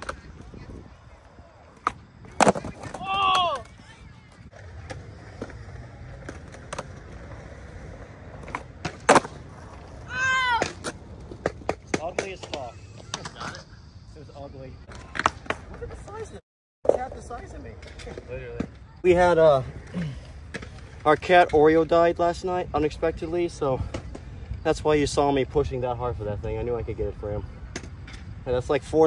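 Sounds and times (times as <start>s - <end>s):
skateboard cracking on concrete: 0.0s - 13.7s, 14.9s - 21.7s
person shouting: 2.9s - 3.8s, 10.1s - 10.7s.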